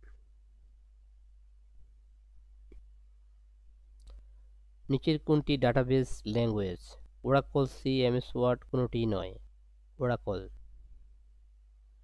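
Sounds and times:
low steady hum: 0:00.0 - 0:12.0
faint click: 0:04.0 - 0:04.3.

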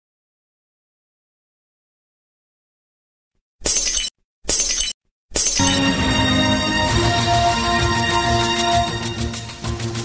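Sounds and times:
theme music: 0:05.6 - 0:10.0.

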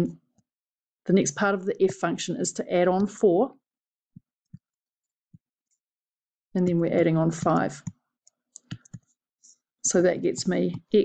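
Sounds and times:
woman speaking: 0:01.1 - 0:03.5, 0:06.6 - 0:07.8, 0:09.9 - 0:11.0
stylus tapping on tablet: 0:08.6 - 0:09.1, 0:10.2 - 0:11.0.

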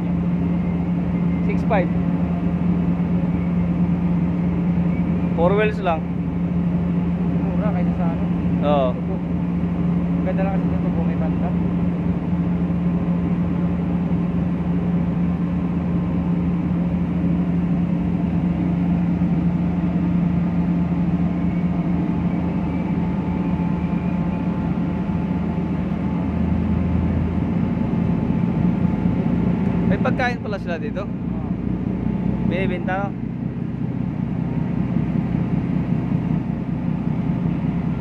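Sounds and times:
ship engines droning: 0:00.0 - 0:38.0.

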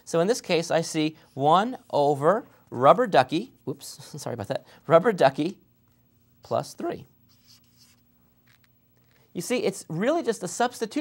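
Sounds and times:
felt-tip marker scratching: 0:07.3 - 0:08.0.

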